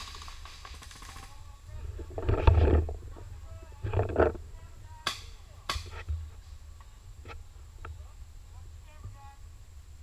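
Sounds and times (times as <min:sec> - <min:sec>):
paintball shots: 0:00.0 - 0:01.4
rough bursts with deep rumble: 0:00.7 - 0:10.0.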